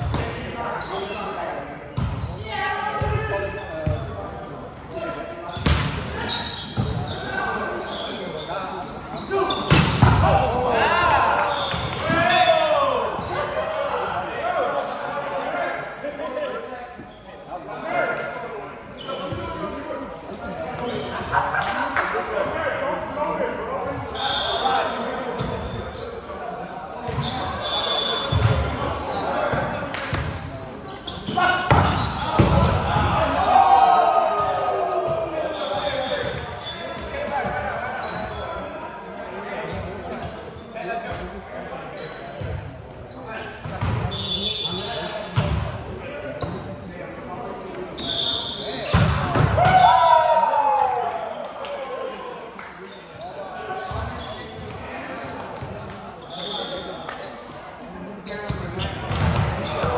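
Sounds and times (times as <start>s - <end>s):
ball bouncing in echoing gym: 0.0s - 0.5s, 1.9s - 2.3s, 5.5s - 7.1s, 9.3s - 12.3s, 31.2s - 33.4s, 43.6s - 44.1s, 45.3s - 45.8s, 48.8s - 49.9s, 58.3s - 59.9s.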